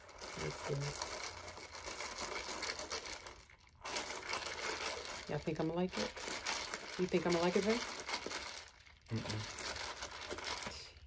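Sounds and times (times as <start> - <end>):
ice rattling in plastic cup: 0.0 - 11.0.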